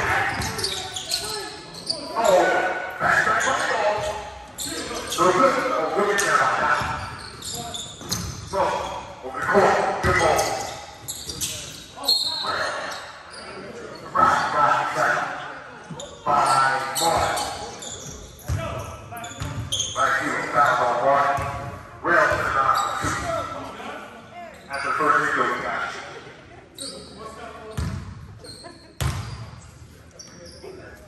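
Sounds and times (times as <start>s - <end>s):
echoing voices and calls: 0.0s - 27.8s
basketball bouncing on hardwood floor: 29.0s - 29.3s.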